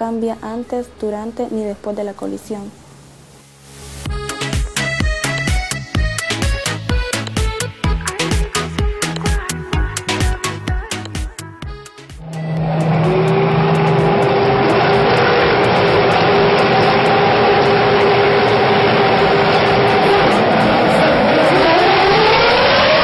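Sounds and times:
music with a beat: 4.0 - 12.8
racing car engines: 12.2 - 23.0.

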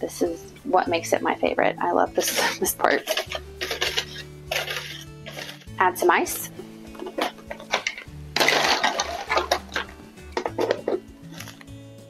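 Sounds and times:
background music: 0.0 - 12.0
ice cubes clattering into glass: 2.4 - 5.6, 7.0 - 11.6.

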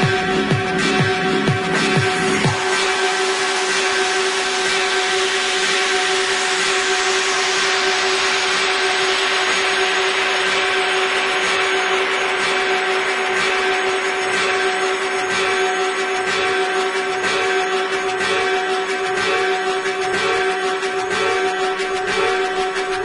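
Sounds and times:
electronic music hissing noise: 0.0 - 23.0
held drone tone: 0.0 - 23.0.

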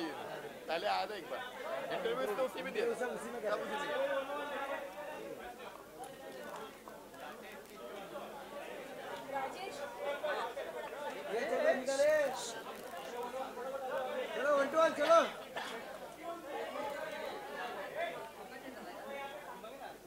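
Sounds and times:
background chatter: 0.0 - 20.0.

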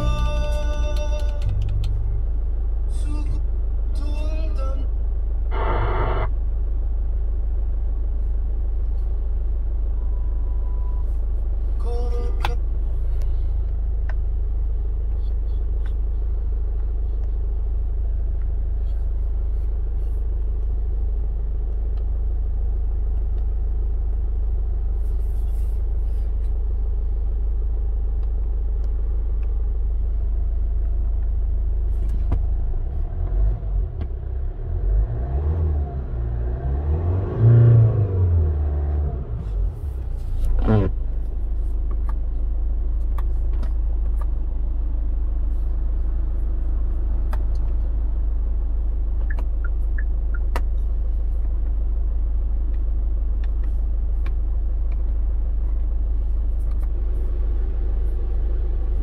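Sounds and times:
car engine idling and revving: 0.0 - 59.0.

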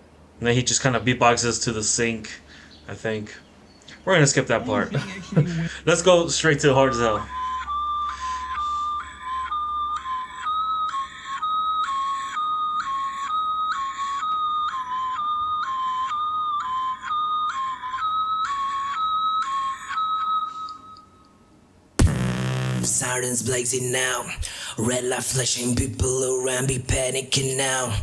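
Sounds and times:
two-tone siren-like whistle: 6.8 - 21.3
person rapping: 22.8 - 28.0.

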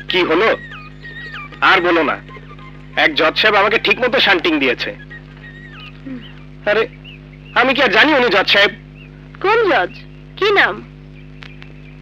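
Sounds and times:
vocal cry with bending pitch: 0.0 - 6.4
low hum: 0.0 - 12.0.

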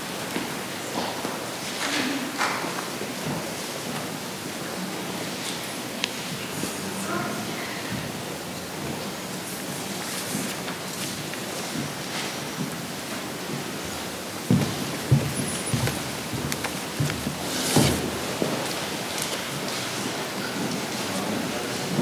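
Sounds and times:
faint murmuring: 6.3 - 8.4
thuds and knocks of footsteps: 13.4 - 18.6.

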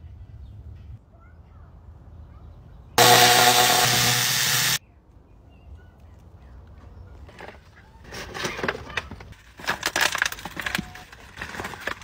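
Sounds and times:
loud motor with rushing hiss: 3.0 - 4.8.

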